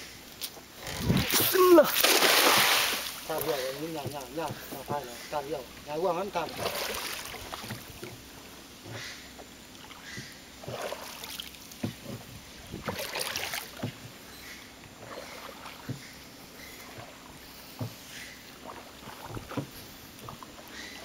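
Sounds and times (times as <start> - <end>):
water splashing against boat: 0.0 - 21.0
knocks on wooden hull: 3.8 - 5.1, 6.5 - 9.0, 11.8 - 14.2.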